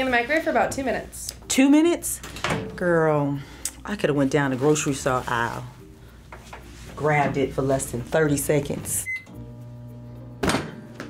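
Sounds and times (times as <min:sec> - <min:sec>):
microwave keypad beep: 0:09.0 - 0:09.3
microwave oven humming: 0:09.1 - 0:11.0.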